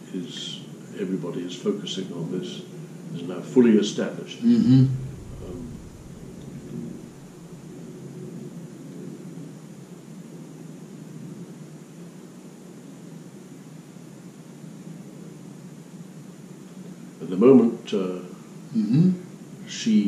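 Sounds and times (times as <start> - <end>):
low background rumble: 0.0 - 10.4
faint indistinct murmur: 0.0 - 11.9, 12.7 - 20.0.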